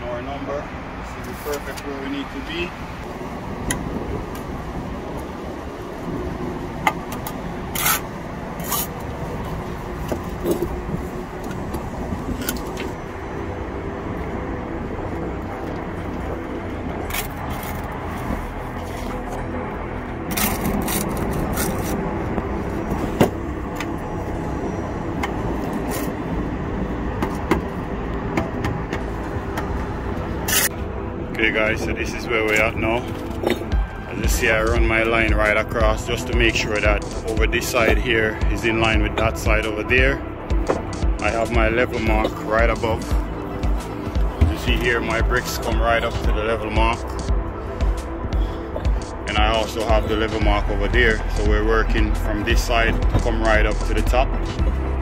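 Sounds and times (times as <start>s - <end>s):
trowel scraping mortar: 7.8s - 8.0s.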